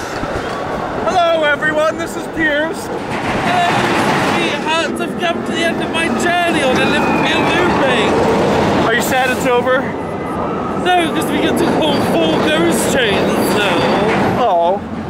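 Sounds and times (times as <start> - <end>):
roller coaster train rumbling: 0.0 - 15.0
riders' voices: 10.8 - 14.8.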